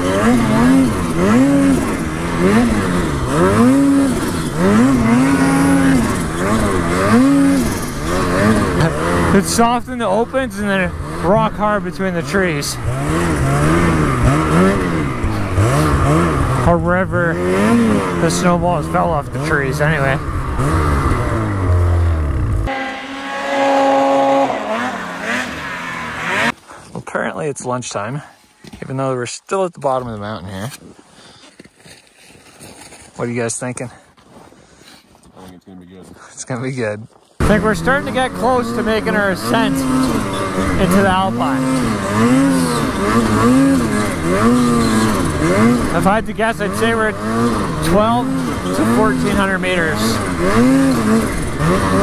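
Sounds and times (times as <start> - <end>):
snowmobile engine droning: 0.0 - 26.6, 37.4 - 52.0
higher wavering engine tone: 20.3 - 26.5.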